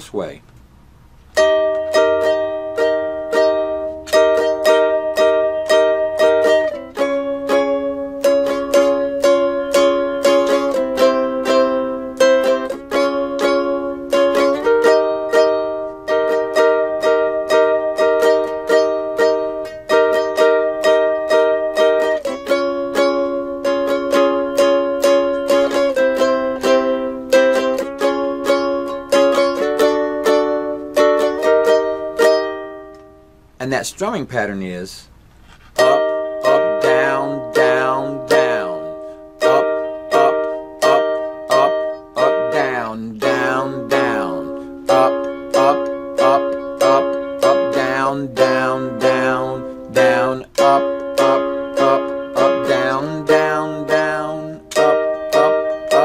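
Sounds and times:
ukulele strumming: 1.2 - 34.2, 35.4 - 56.0.

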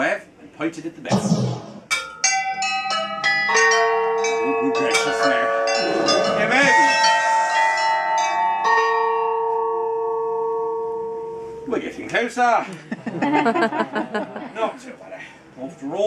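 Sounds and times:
bells ringing at different pitches: 1.9 - 11.7.

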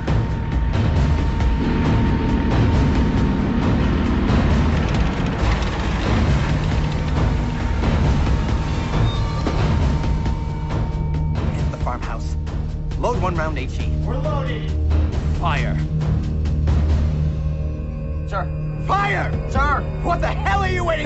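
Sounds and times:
tank engine and tracks rumbling: 0.0 - 11.2
music playing: 0.0 - 21.0.

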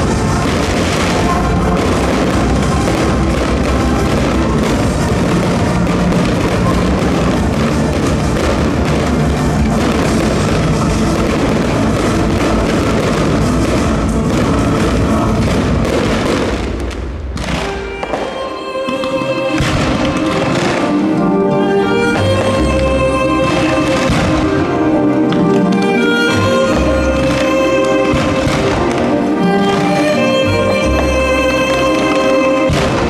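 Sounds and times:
firework shells bursting: 0.0 - 33.0
music: 0.0 - 33.0.

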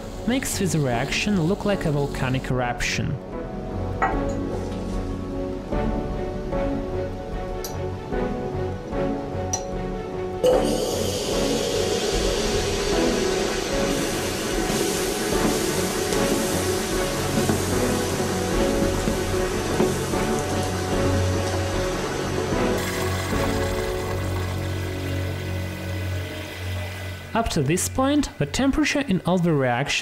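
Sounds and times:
rushing hiss of venting gas: 0.0 - 2.5, 10.4 - 28.9
background music: 0.0 - 30.0.

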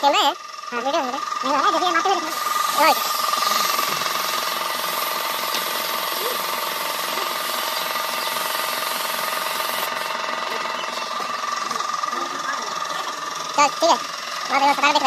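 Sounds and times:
air compressor running: 0.0 - 15.0
spray gun hissing: 2.3 - 10.2.

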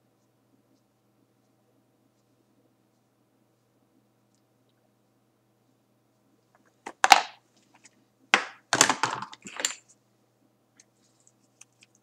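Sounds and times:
objects clattering and scraping: 6.9 - 9.9.

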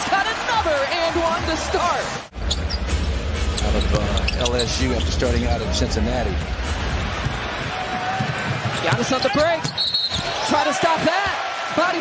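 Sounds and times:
arena crowd noise: 0.0 - 2.4, 4.2 - 12.0.

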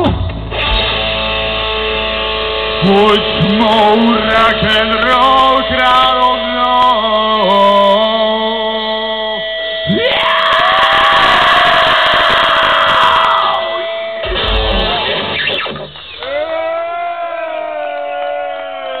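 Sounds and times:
crowd shouting and whooping: 9.9 - 15.4, 16.1 - 19.0.

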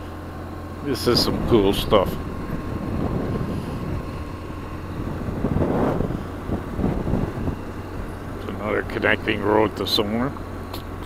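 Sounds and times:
motorcycle engine running: 0.0 - 11.0
wind noise on microphone: 1.1 - 8.4.

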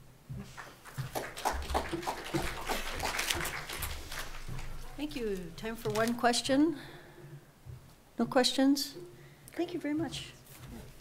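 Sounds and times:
audience applauding: 0.5 - 4.9.

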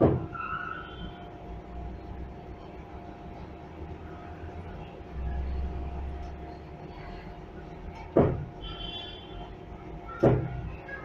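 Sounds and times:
loud clunk: 0.0 - 0.3
elevator hum and rumble: 0.0 - 11.0
high squeal: 0.3 - 1.2.

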